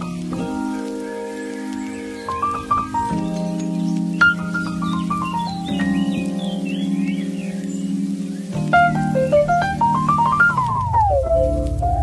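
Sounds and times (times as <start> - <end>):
sustained music chords: 0.0 - 12.0.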